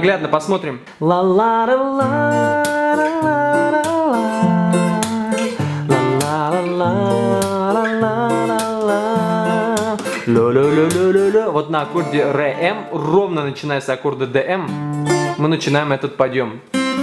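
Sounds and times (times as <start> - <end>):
acoustic guitar solo with slides: 0.9 - 13.7, 14.6 - 15.9, 16.6 - 17.0.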